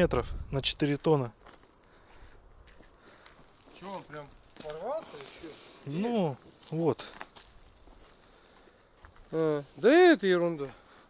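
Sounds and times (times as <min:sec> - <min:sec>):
footsteps on asphalt: 0:01.1 - 0:09.4.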